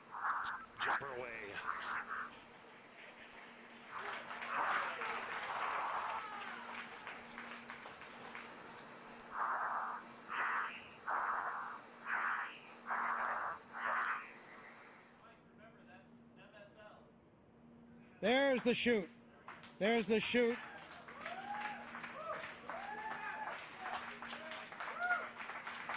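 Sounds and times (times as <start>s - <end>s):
garbled radio sound: 0.0s - 2.4s, 9.3s - 15.0s
steady low hum: 0.0s - 20.6s
short bursts of radio noise: 9.3s - 15.1s.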